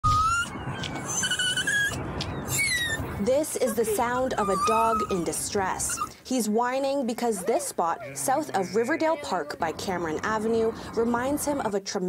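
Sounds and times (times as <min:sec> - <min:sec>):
dog whining: 0:00.0 - 0:06.2, 0:07.2 - 0:08.2.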